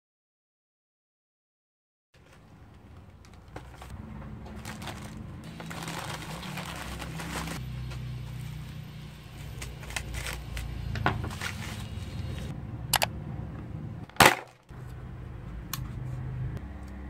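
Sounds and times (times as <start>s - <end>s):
plastic mailer rustling and tearing: 2.2s - 8.0s, 9.4s - 12.5s, 14.2s - 14.6s.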